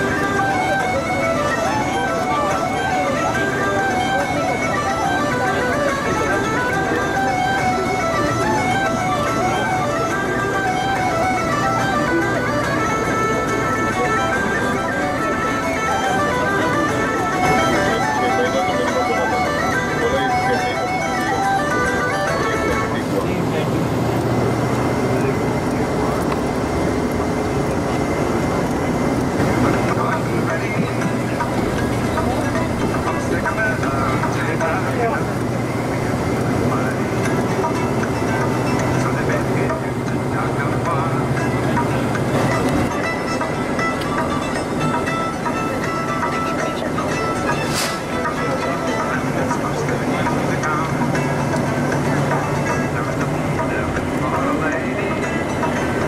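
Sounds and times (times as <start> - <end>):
bus engine and road noise: 0.0 - 56.0
music with held tones: 0.0 - 56.0.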